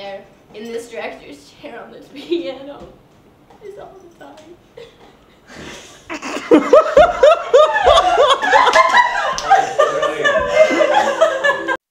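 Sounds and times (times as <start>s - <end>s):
woman laughing loudly: 6.1s - 11.8s.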